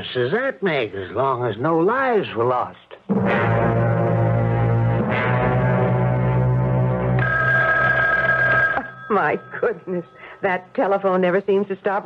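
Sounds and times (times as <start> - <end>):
telephone ringing: 7.1 - 10.4.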